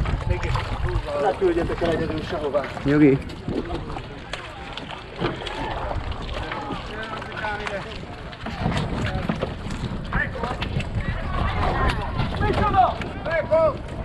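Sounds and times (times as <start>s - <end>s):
wind rumble on microphone: 0.0s - 14.0s
people talking indistinctly: 0.1s - 13.8s.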